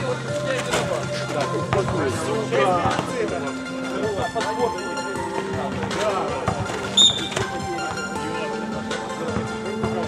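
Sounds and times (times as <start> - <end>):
background music: 0.0 - 10.0
voices: 0.0 - 10.0
basketball bouncing on asphalt: 5.4 - 8.1.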